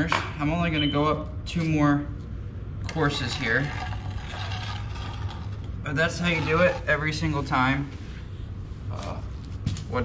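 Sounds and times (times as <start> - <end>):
steady low hum: 0.0 - 10.0
trowel scraping mortar: 3.4 - 7.1.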